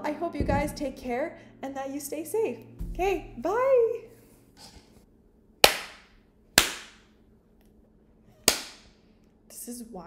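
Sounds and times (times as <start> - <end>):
sharp hand claps with echo: 5.6 - 7.1, 8.5 - 8.9.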